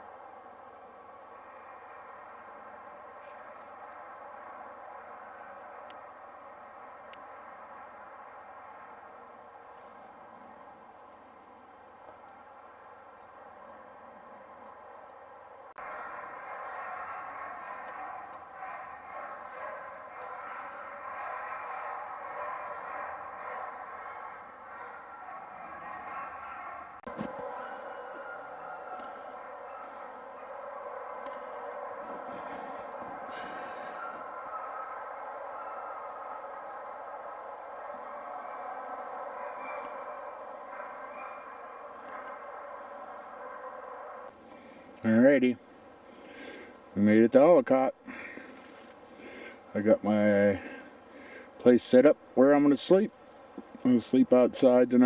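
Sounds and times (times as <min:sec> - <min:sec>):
sled dogs howling: 0:00.0 - 0:45.4.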